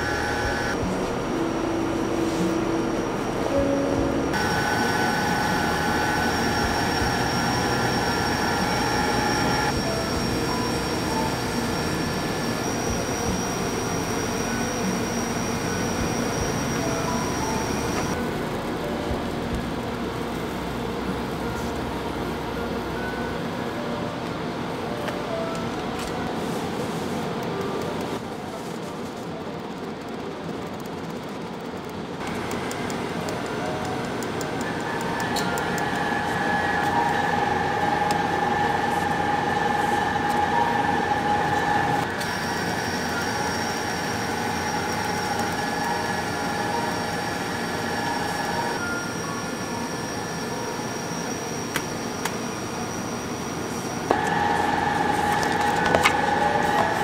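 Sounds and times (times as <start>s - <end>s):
mechanical hum and hiss: 0.0s - 57.0s.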